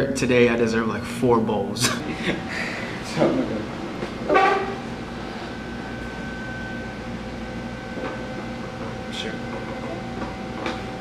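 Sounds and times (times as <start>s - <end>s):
steady hum with high tone: 0.0s - 11.0s.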